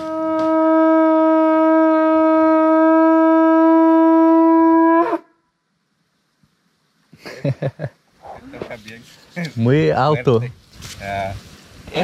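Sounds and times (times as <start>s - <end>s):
conch shell trumpet blowing: 0.0s - 5.6s.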